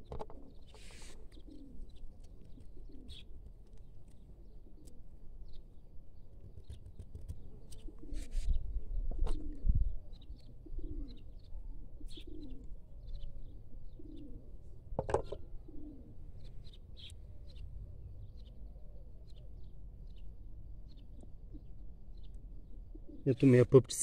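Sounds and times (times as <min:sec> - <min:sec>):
dove cooing: 0:00.0 - 0:03.4, 0:04.2 - 0:05.2, 0:07.4 - 0:19.5, 0:21.5 - 0:21.8, 0:22.6 - 0:23.5.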